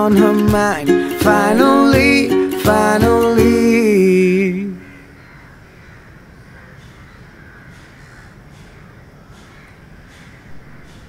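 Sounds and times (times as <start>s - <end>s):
birds calling: 4.5s - 11.0s.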